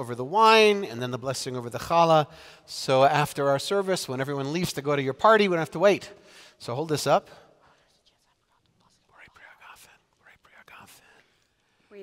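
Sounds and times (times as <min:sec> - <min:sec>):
person whispering: 0:07.6 - 0:12.0.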